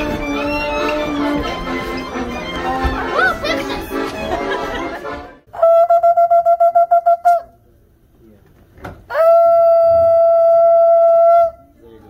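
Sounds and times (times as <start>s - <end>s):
shofar blowing: 5.6s - 7.5s, 9.1s - 11.8s.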